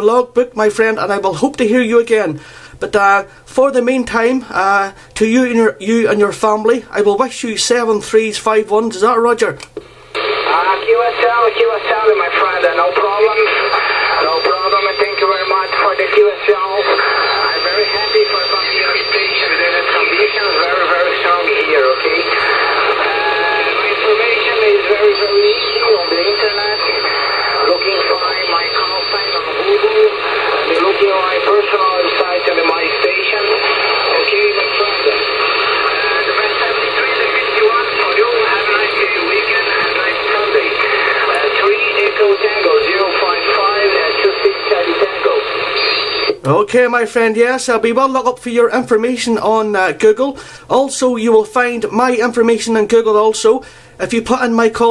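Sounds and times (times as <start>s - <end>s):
radio hiss and static: 9.8s - 46.4s
distant voice over radio: 10.2s - 45.8s
high steady whistle: 16.8s - 20.7s, 25.1s - 29.4s.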